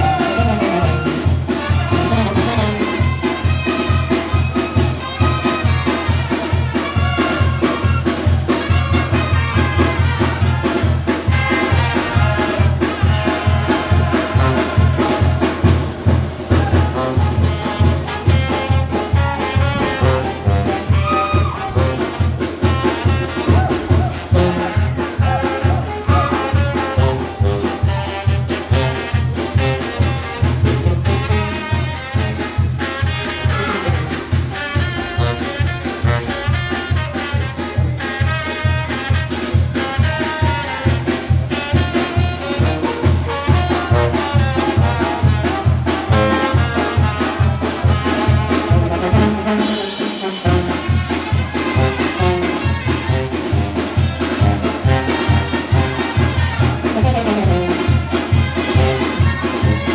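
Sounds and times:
brass band playing dance music: 0:00.0 - 0:59.9.

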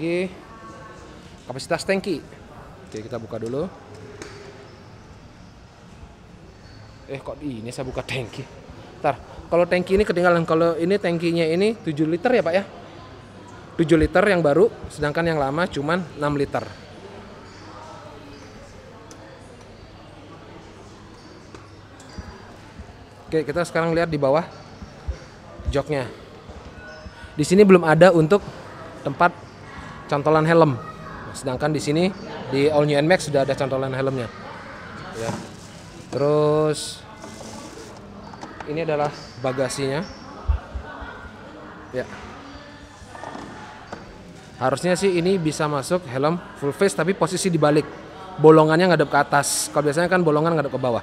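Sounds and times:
faint background voices: 0:00.0 - 0:51.0.

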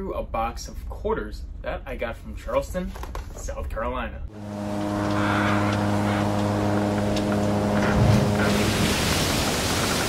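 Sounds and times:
wind: 0:00.0 - 0:10.0
ship engine hum: 0:04.3 - 0:10.0
rushing water: 0:04.4 - 0:10.0.

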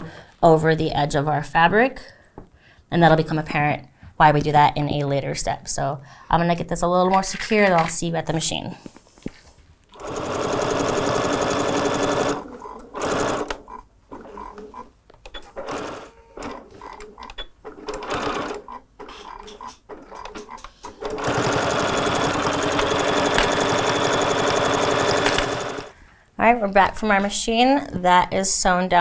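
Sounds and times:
electric sewing machine stitching: 0:09.9 - 0:14.9, 0:15.5 - 0:25.9.

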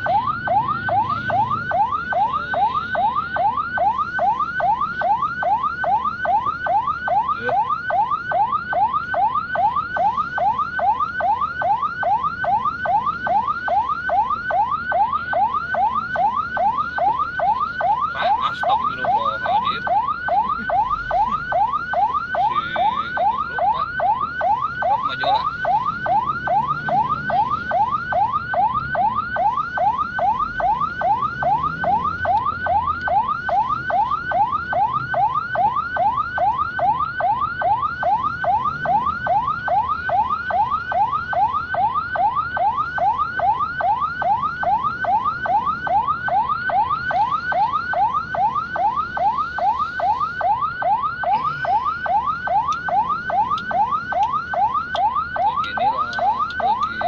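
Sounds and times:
ambulance siren yelping: 0:00.0 - 0:57.0
faint traffic rumble: 0:00.0 - 0:57.0.

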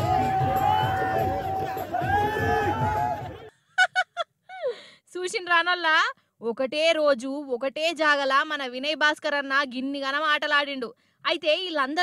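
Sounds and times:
crowd noise: 0:00.0 - 0:03.5.

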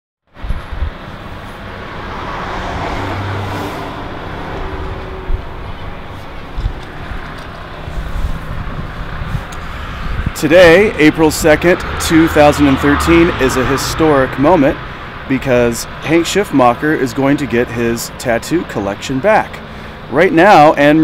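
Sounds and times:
street traffic: 0:00.3 - 0:21.0
vehicle passing by: 0:00.4 - 0:18.2.

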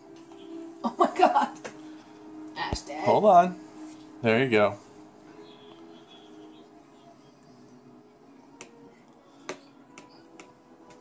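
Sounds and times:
faint background music: 0:00.0 - 0:11.0.

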